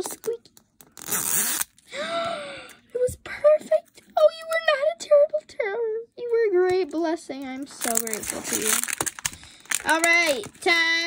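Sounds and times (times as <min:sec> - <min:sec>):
plastic seal ripping: 0:07.8 - 0:10.8.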